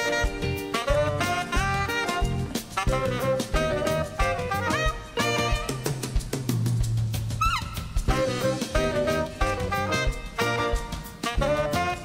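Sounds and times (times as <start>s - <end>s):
saxophone: 0.0s - 6.5s, 7.3s - 12.0s
drum kit beating: 0.0s - 12.0s.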